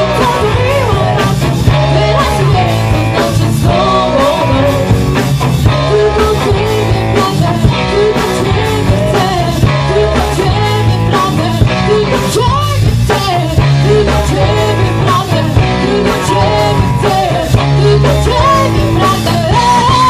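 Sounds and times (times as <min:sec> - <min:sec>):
live rock band playing: 0:00.0 - 0:20.0
person singing: 0:00.0 - 0:20.0
steady drum beat: 0:00.0 - 0:20.0.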